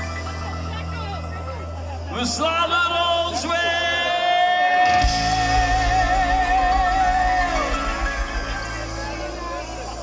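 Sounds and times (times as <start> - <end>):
crowd voices: 0.0 - 10.0
live band music: 0.0 - 10.0.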